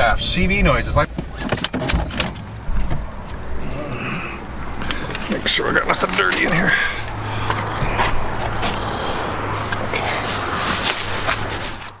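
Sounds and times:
handling knocks and clicks: 0:01.0 - 0:03.5
fabric rubbing on microphone: 0:09.5 - 0:12.0.

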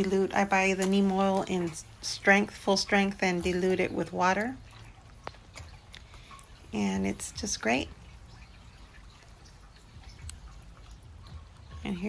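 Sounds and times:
sprayer spray and trickle: 0:00.0 - 0:12.0.

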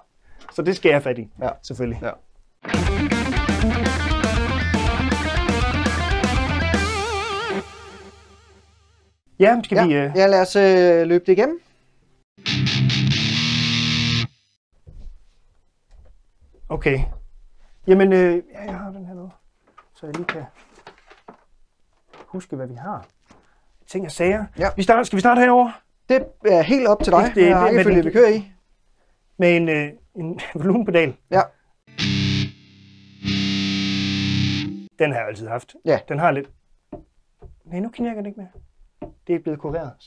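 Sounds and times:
distorted electric guitar: 0:02.7 - 0:08.3, 0:12.4 - 0:14.5, 0:31.9 - 0:34.9.

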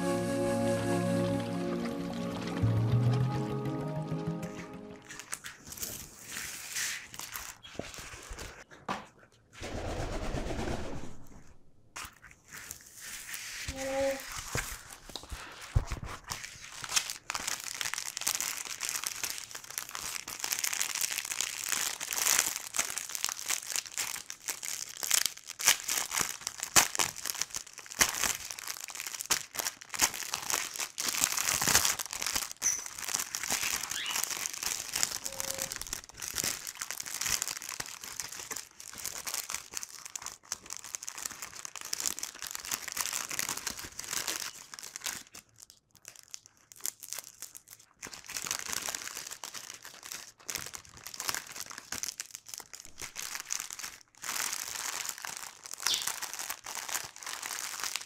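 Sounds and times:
plastic packaging crinkling: 0:00.7 - 0:08.7, 0:12.0 - 0:58.0.

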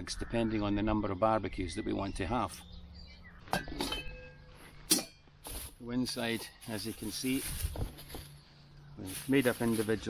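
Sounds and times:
metal lid clinking: 0:03.6 - 0:05.2
short metallic ring: 0:03.6 - 0:05.3.

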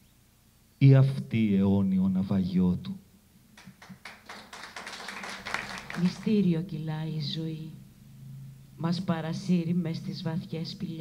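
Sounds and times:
audience applause: 0:03.6 - 0:06.4.

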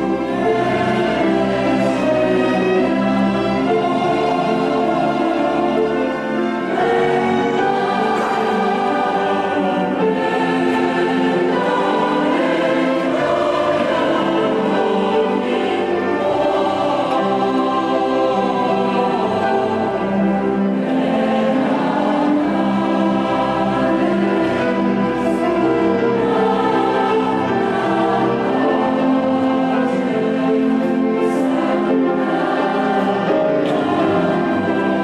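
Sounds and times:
choir singing christmas music: 0:00.0 - 0:35.0.

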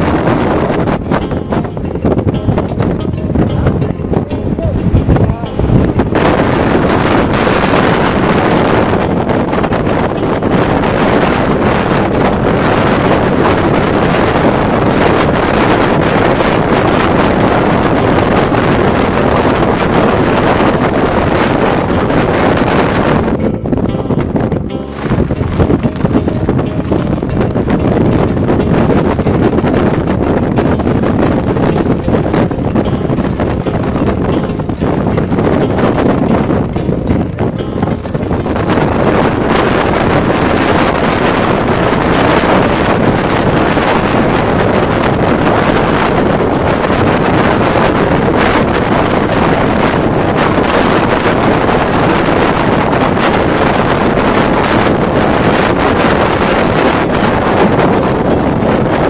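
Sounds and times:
strong wind on microphone: 0:00.0 - 0:59.0.

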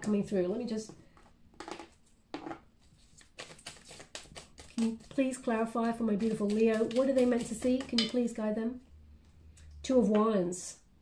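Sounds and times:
cards being handled: 0:02.8 - 0:05.2.

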